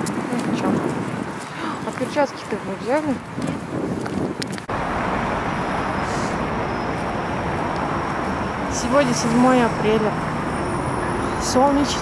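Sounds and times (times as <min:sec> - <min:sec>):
city road traffic hiss: 0:04.7 - 0:12.0.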